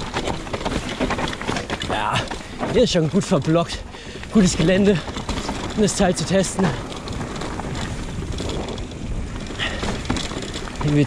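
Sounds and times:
bike rolling over rocky trail: 0.0s - 11.0s
wind buffeting microphone: 0.0s - 11.0s.

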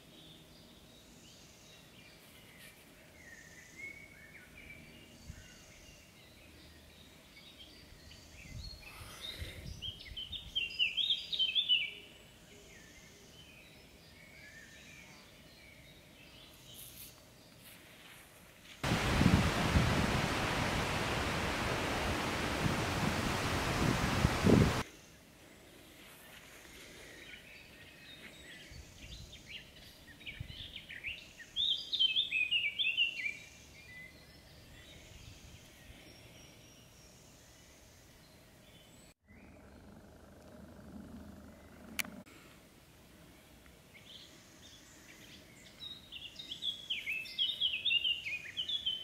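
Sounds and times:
songbird chirping: 0.0s - 42.3s, 43.0s - 49.0s.

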